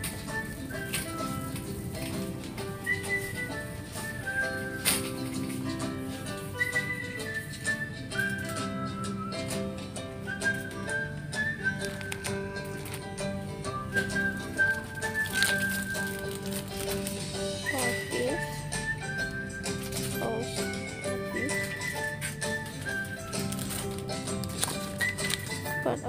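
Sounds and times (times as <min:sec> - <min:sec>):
background music with long notes: 0:00.0 - 0:26.0.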